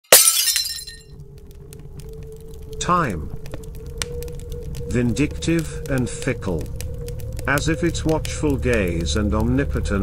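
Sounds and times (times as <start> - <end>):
glass breaking crash: 0.1 - 1.1.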